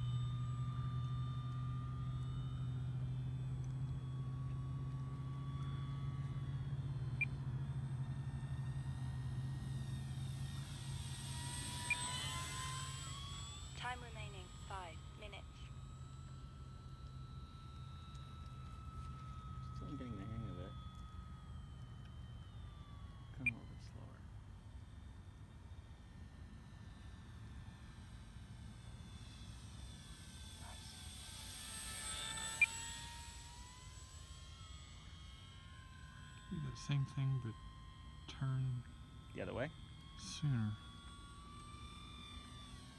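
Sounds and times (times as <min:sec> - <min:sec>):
low steady hum: 0:00.0 - 0:42.9
model airplane motor whining: 0:00.0 - 0:42.9.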